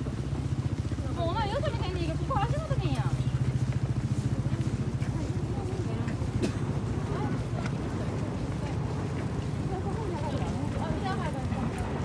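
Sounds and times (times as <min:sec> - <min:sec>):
faint chatter of people: 0:00.7 - 0:12.0.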